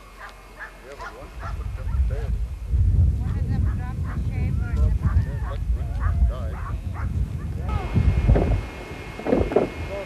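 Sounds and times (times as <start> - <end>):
wind rumble on microphone: 1.1 - 10.0.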